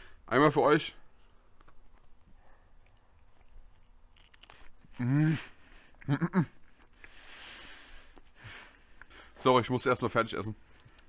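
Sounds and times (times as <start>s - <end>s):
faint chewing of crispy food: 1.1s - 9.4s, 10.6s - 11.0s.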